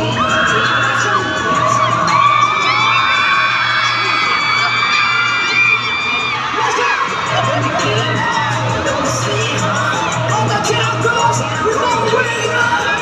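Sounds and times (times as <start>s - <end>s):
crowd screaming and whooping: 0.0s - 13.0s
loud amplified music: 0.0s - 13.0s.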